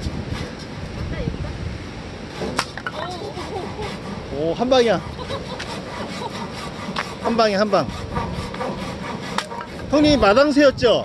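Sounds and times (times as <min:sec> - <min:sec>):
hand saw cutting wood: 0:02.3 - 0:10.6.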